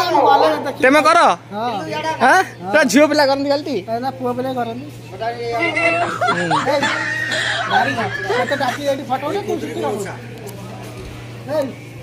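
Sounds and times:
steady low hum: 0:00.0 - 0:02.8
people talking: 0:05.4 - 0:11.1
chuckling laughter: 0:05.6 - 0:09.2.

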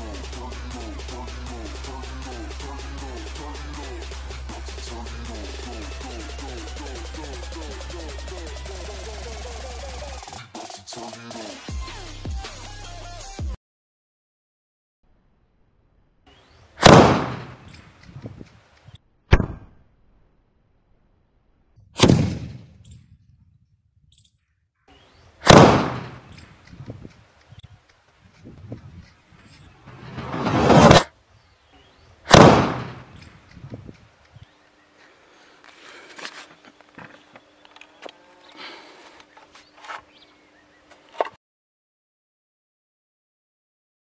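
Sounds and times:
firecracker bangs: 0:16.8 - 0:17.6, 0:25.4 - 0:26.3, 0:32.3 - 0:33.2
rising rush: 0:29.8 - 0:31.1.

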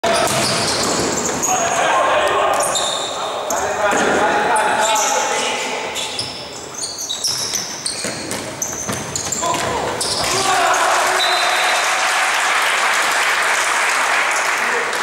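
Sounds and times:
shoes squeaking: 0:00.0 - 0:10.4
ball kicked and bouncing: 0:07.3 - 0:10.3
players shouting: 0:09.4 - 0:12.5.

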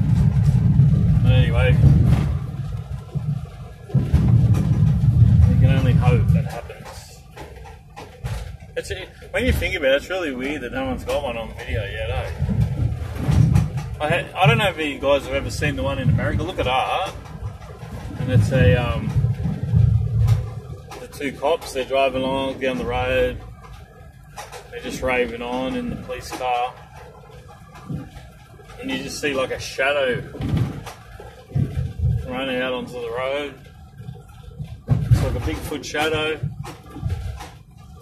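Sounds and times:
car cabin engine and tyre rumble: 0:00.0 - 0:38.0.

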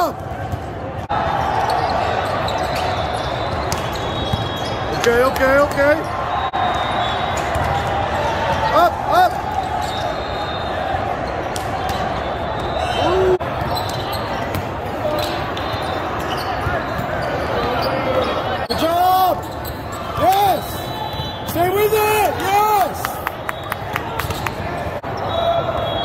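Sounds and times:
crowd din in echoing hall: 0:00.0 - 0:26.0
players shouting calls: 0:01.1 - 0:26.0.

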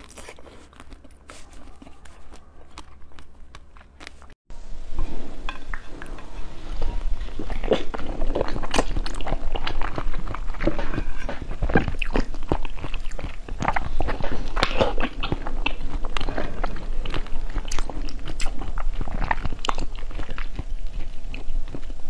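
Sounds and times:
jelly chewing mouth clicks: 0:00.0 - 0:04.4, 0:07.4 - 0:22.0.

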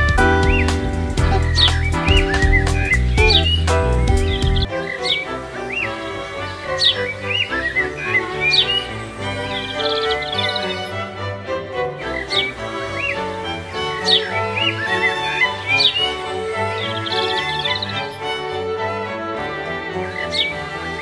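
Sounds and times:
deep bass: 0:00.0 - 0:04.7
bird-like chirps: 0:00.0 - 0:11.1, 0:12.0 - 0:18.4, 0:20.1 - 0:21.0
music of sustained chords: 0:00.0 - 0:21.0.

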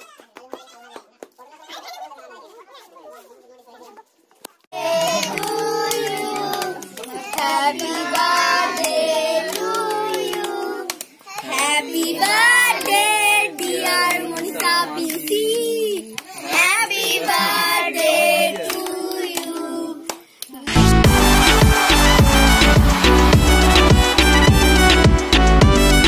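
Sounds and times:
children clapping: 0:00.0 - 0:01.4, 0:04.8 - 0:17.6, 0:18.2 - 0:25.0
children singing: 0:04.8 - 0:14.9, 0:16.4 - 0:20.1.

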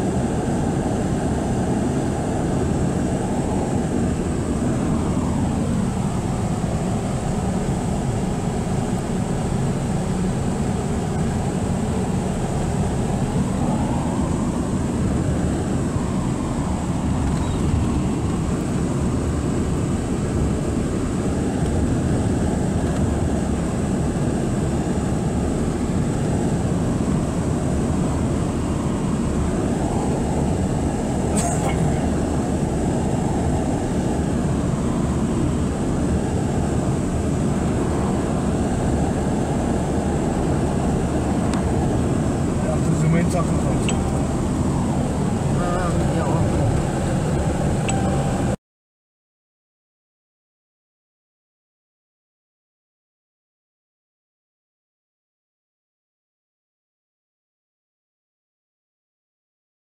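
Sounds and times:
car road and engine noise: 0:00.0 - 0:48.6
tyres on wet road: 0:00.1 - 0:48.6.

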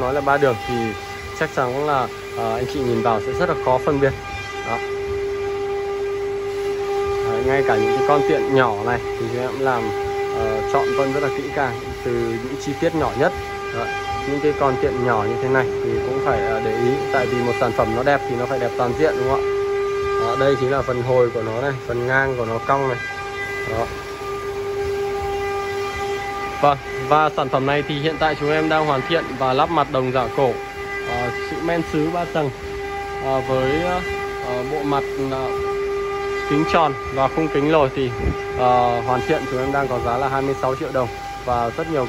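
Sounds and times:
machine whine: 0:00.0 - 0:42.0
steady horn-like tone: 0:00.0 - 0:42.0.

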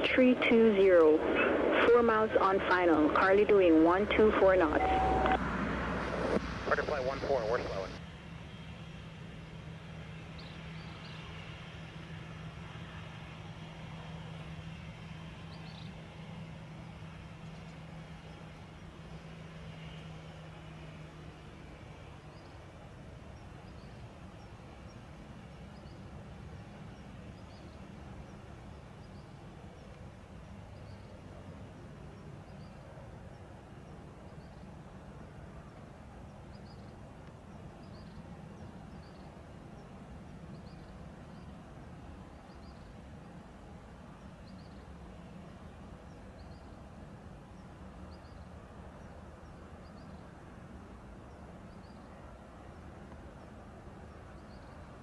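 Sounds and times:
low hum: 0:00.0 - 0:55.0.

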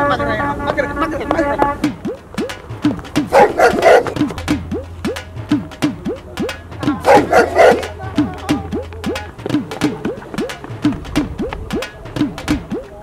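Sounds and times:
comedic background music: 0:00.8 - 0:13.0.

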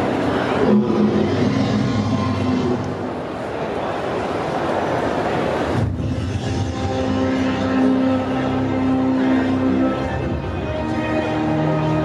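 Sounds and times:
music with long low notes: 0:00.0 - 0:03.1
crowd noise in hall: 0:00.0 - 0:12.0.

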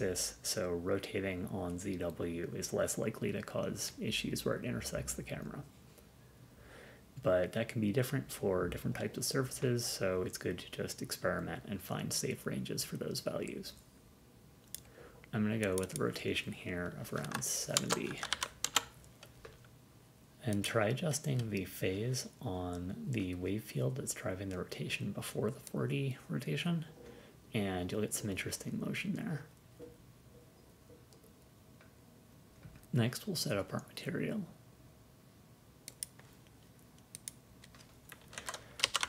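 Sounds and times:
keyboard keystrokes: 0:17.2 - 0:19.3, 0:37.2 - 0:39.0.

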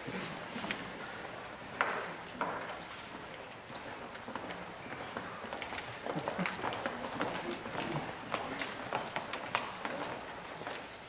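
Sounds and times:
shoes clicking on stage floor: 0:00.0 - 0:11.0.

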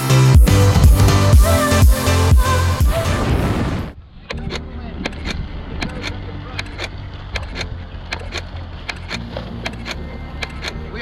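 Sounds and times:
wind rumbling on microphone: 0:02.9 - 0:08.1
sharp clicks: 0:04.2 - 0:10.8.

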